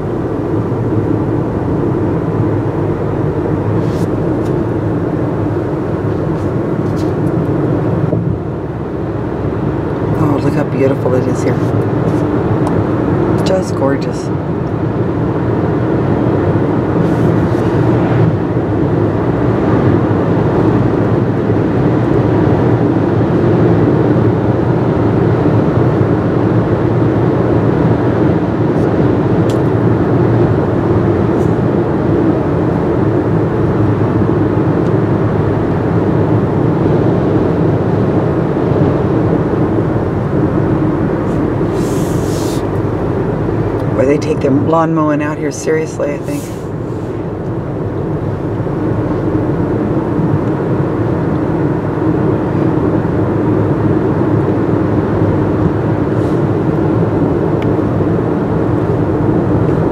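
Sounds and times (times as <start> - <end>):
car road and engine noise: 0.0 - 59.9
high hiss: 41.7 - 42.7.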